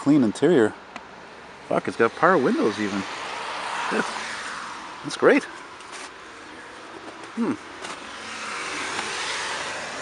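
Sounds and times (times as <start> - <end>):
road vehicle passing by: 1.2 - 10.0.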